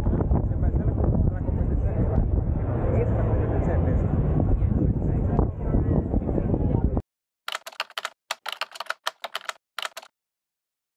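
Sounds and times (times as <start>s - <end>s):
keyboard keystroke clicks: 7.5s - 10.1s.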